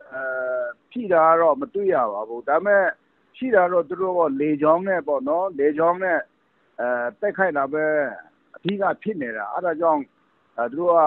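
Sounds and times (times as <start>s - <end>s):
man talking over telephone: 0.0s - 6.2s, 6.8s - 10.0s, 10.6s - 11.0s.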